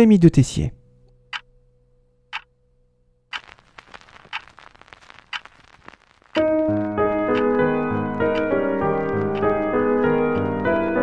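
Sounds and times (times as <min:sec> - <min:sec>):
clock ticking: 0:03.3 - 0:05.6, 0:06.3 - 0:09.6
background hiss: 0:03.3 - 0:10.2.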